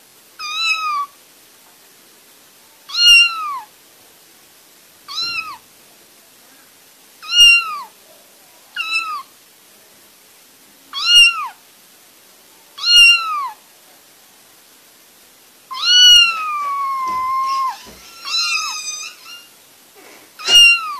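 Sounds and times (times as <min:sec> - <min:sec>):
kitten meowing: 0:00.4 - 0:01.1, 0:02.9 - 0:03.7, 0:05.1 - 0:05.6, 0:07.2 - 0:07.9, 0:08.8 - 0:09.3, 0:11.0 - 0:11.6, 0:12.8 - 0:13.6, 0:15.7 - 0:19.5, 0:20.4 - 0:20.9.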